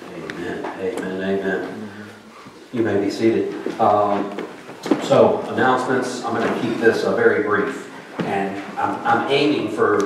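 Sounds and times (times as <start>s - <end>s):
man talking into microphone: 0.0s - 10.0s.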